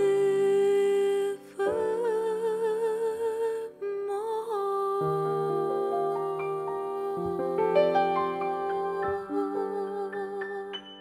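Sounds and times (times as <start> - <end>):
woman singing jazz with vibrato: 0.0 - 10.8
piano chords: 0.0 - 11.0.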